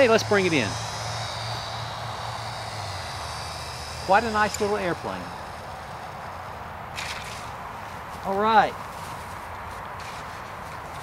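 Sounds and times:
low steady hum: 0:00.0 - 0:11.0
model airplane motor whine: 0:00.0 - 0:11.0.

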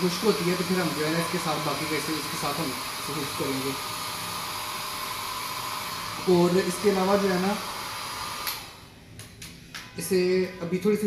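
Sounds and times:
hair dryer blowing: 0:00.0 - 0:09.0.

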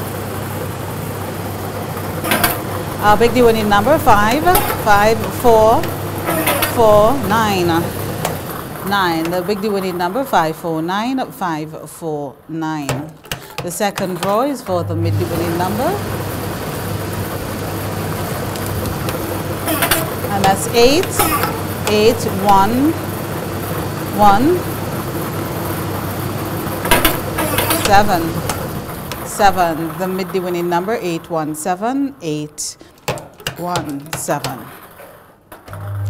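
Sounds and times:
lottery ball machine rushing: 0:00.0 - 0:11.1, 0:12.9 - 0:31.4
balls clattering: 0:02.0 - 0:10.4, 0:18.0 - 0:23.2, 0:26.5 - 0:31.2, 0:32.8 - 0:36.0
low hum: 0:14.7 - 0:17.4, 0:35.7 - 0:36.0.

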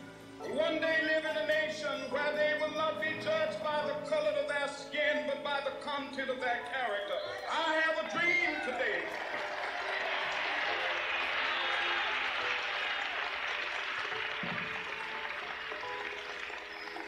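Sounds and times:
soft background music: 0:00.0 - 0:17.0
crowd applauding and cheering: 0:07.3 - 0:17.0.

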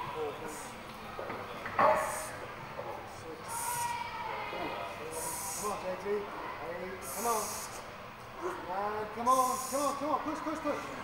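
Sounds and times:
sharp hissing breaths: 0:07.0 - 0:07.8, 0:09.3 - 0:10.0.

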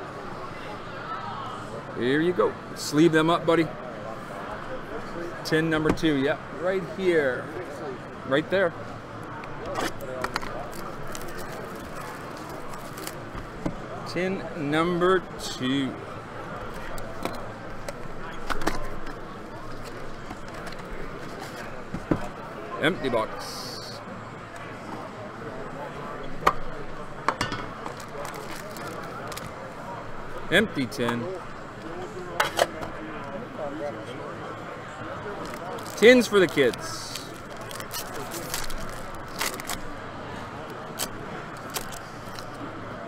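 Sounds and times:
crowd chatter: 0:00.0 - 0:43.0
plastic wrap crinkling and tearing: 0:10.5 - 0:13.2, 0:28.0 - 0:29.5, 0:35.4 - 0:39.9.

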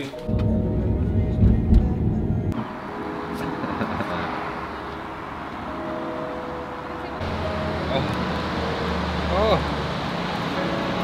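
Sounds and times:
car road rumble inside cabin: 0:00.2 - 0:02.6.

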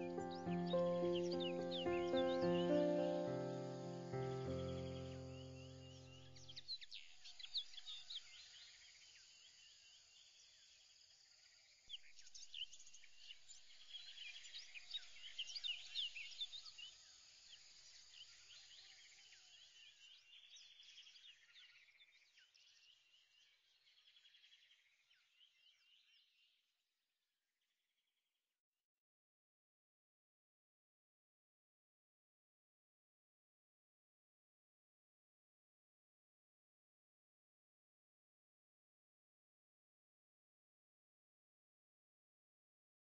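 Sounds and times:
music chord: 0:00.0 - 0:06.1
birds chirping: 0:00.0 - 0:08.1.

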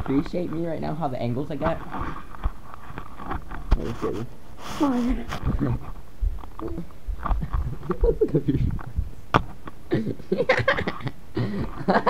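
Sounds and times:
microphone handling rumble: 0:05.1 - 0:09.6.

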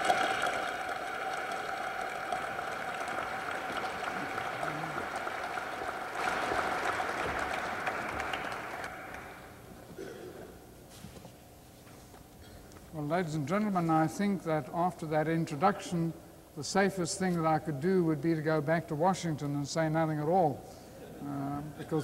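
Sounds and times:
audience applauding: 0:00.0 - 0:09.6.

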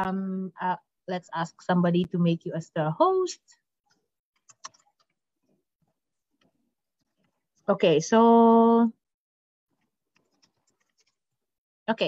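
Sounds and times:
woman speaking: 0:00.0 - 0:03.5, 0:07.7 - 0:09.0.

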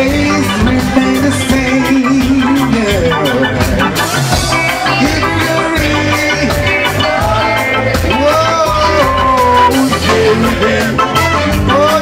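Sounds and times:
live reggae band playing: 0:00.0 - 0:12.0.

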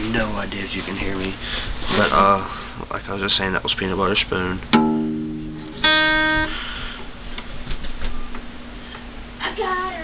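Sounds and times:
guitar plucked: 0:04.7 - 0:06.6.

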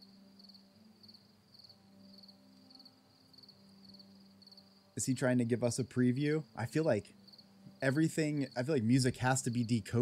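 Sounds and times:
cricket-like chirping: 0:00.0 - 0:10.0.

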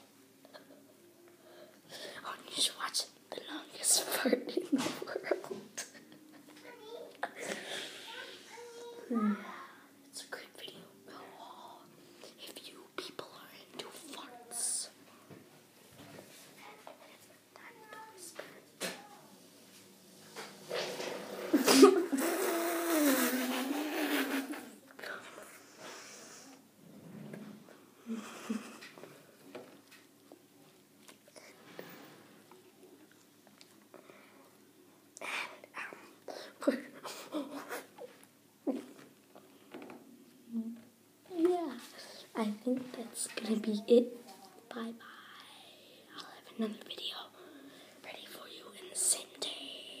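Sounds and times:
boy whispering: 0:01.9 - 0:06.0, 0:07.2 - 0:15.0, 0:16.8 - 0:19.3, 0:22.2 - 0:26.6, 0:35.2 - 0:37.5, 0:40.5 - 0:50.0
fake fart noise blown through lips: 0:20.7 - 0:24.7.

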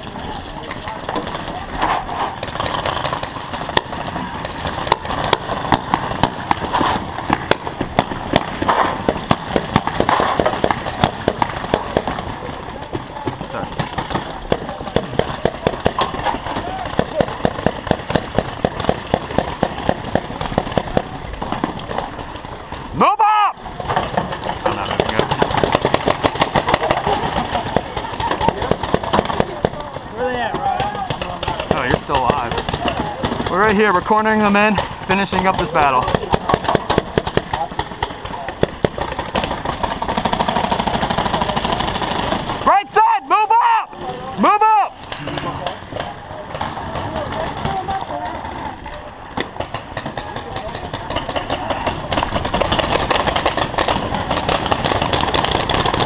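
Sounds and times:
paintball markers firing: 0:00.0 - 0:22.9, 0:23.7 - 0:42.7, 0:45.0 - 0:56.0
people shouting: 0:14.6 - 0:17.6, 0:22.9 - 0:23.7, 0:26.3 - 0:36.0, 0:42.6 - 0:45.0.

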